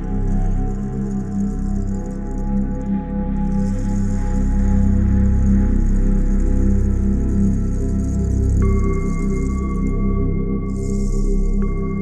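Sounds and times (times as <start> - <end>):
low pulsing drone: 0.0 - 12.0.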